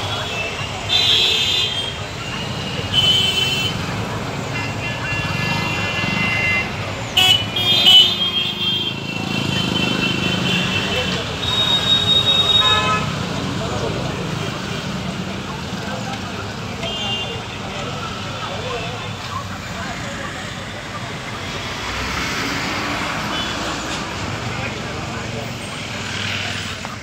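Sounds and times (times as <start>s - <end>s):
indistinct crowd voices: 0.0s - 27.0s
motor scooters and vehicles passing: 0.0s - 27.0s.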